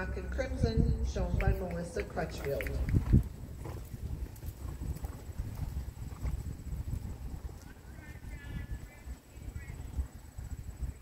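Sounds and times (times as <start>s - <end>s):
low uneven rumble: 0.0s - 11.0s
hoofbeats on sand: 1.4s - 9.0s.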